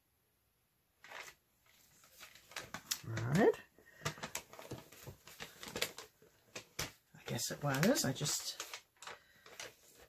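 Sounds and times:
paper crinkling and rustling: 1.0 - 10.0.

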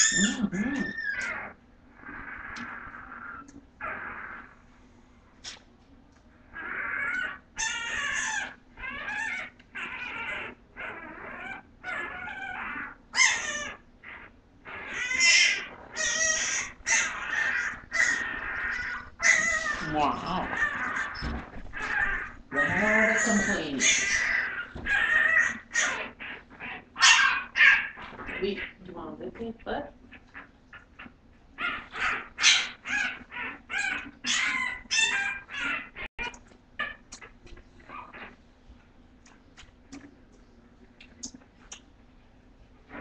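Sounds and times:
puppies crying and squealing: 0.0 - 4.7, 6.4 - 29.4, 30.0 - 38.4
puppies whining: 0.0 - 40.1.

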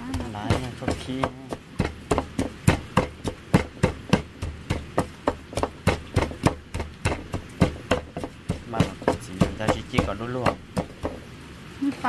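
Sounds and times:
wooden pestle pounding in bowl: 0.0 - 11.3.

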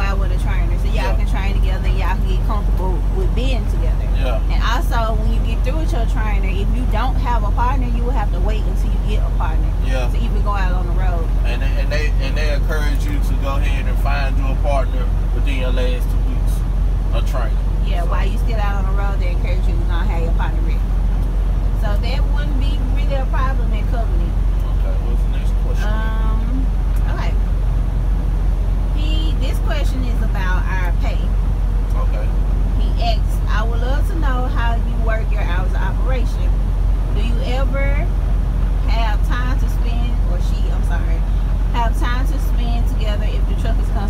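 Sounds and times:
road noise: 0.0 - 44.0
truck engine rumble: 0.0 - 44.0
man talking: 0.9 - 1.2, 4.2 - 4.5, 9.8 - 10.2, 11.4 - 17.6, 24.6 - 26.0, 31.9 - 32.4.

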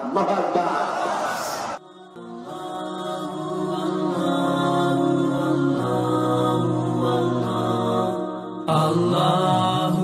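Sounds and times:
solo vocal chant: 1.8 - 10.0.

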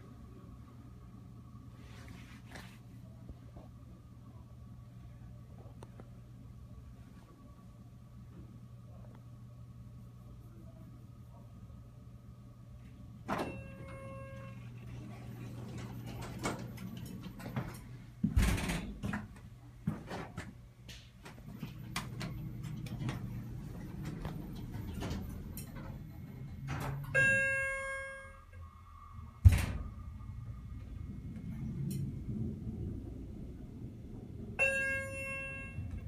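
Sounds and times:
low steady hum: 0.0 - 36.0
elevator doors sliding: 13.2 - 19.3, 21.3 - 36.0
elevator door clunk: 13.2 - 19.4, 21.4 - 28.3, 29.2 - 36.0
brief ringing tone: 13.4 - 14.9, 27.1 - 28.6, 34.6 - 36.0.

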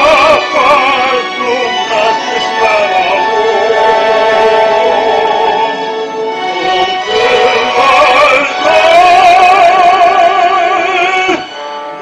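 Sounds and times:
baritone singing with vibrato: 0.0 - 11.7
instrumental backing: 0.0 - 12.0.

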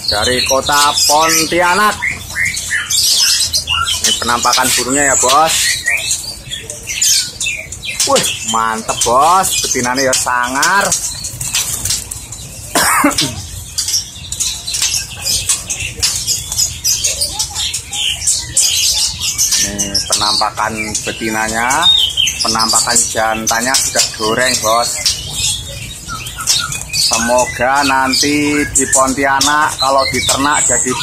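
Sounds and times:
birds fluttering in a wire cage: 0.0 - 31.0.

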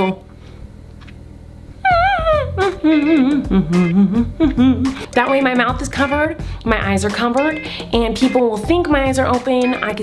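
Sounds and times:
woman humming: 1.8 - 5.3.

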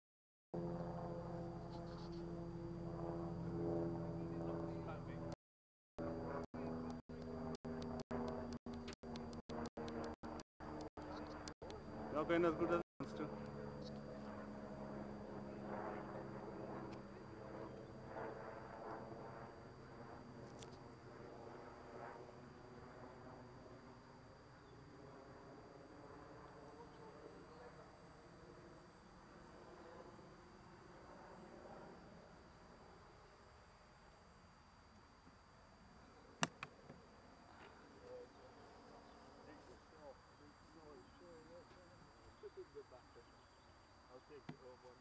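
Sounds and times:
model plane motor drone: 0.6 - 5.4, 6.0 - 45.0
sharp clicks: 6.9 - 11.8.

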